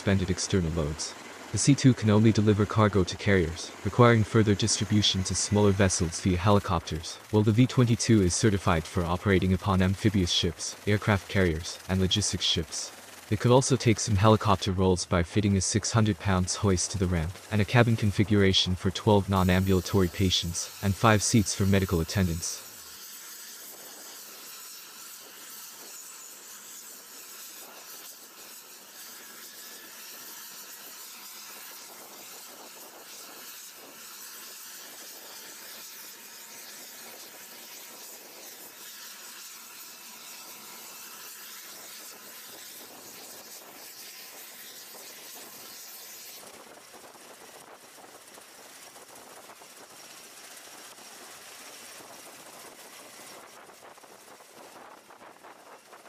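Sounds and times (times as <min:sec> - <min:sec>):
aircraft engines hissing rush: 0:00.0 - 0:22.8, 0:39.6 - 0:56.0
faint steady whine: 0:00.0 - 0:56.0.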